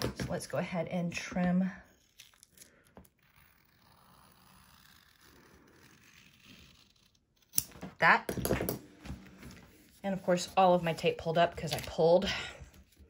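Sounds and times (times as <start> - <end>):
scissors snipping vinyl: 2.0 - 7.8.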